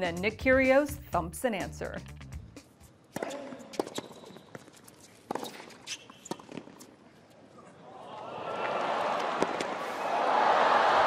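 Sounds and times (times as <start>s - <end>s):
racket hitting tennis ball: 3.1s - 6.9s
tennis ball bouncing on hard court: 3.1s - 6.9s.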